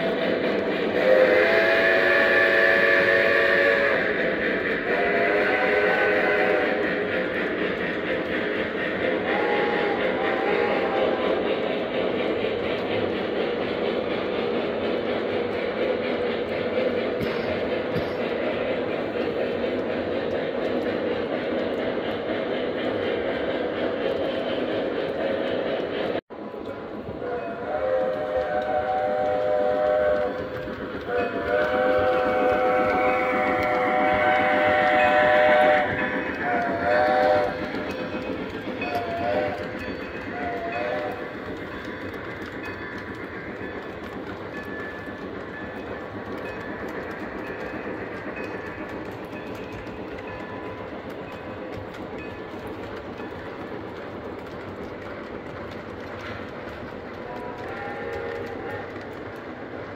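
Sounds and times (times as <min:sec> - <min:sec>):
model train cars rumbling: 0:00.0 - 0:59.9
model train whistle: 0:00.9 - 0:04.2, 0:04.8 - 0:06.9, 0:09.2 - 0:11.4, 0:27.2 - 0:30.4, 0:31.0 - 0:37.8, 0:38.8 - 0:41.3, 0:57.2 - 0:59.0.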